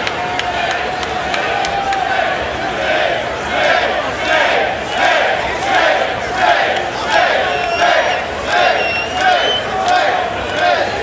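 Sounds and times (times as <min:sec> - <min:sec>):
crowd chanting in unison: 0:00.5 - 0:11.0
thin high whistle: 0:07.5 - 0:09.7.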